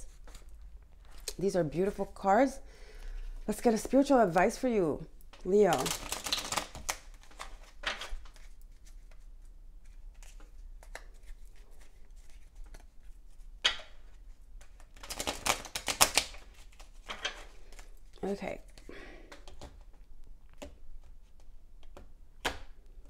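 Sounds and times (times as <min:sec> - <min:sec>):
cards being shuffled: 0:05.3 - 0:18.0.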